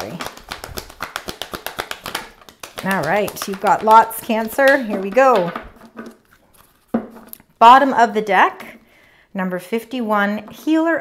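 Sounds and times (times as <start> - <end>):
cards being shuffled: 0.0 - 7.1.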